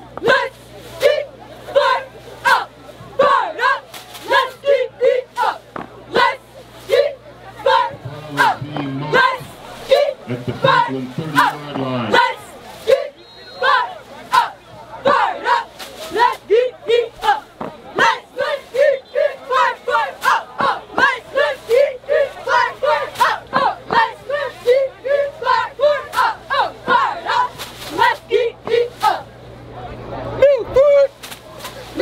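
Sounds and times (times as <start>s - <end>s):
cheerleaders chanting in unison: 0.1s - 29.4s.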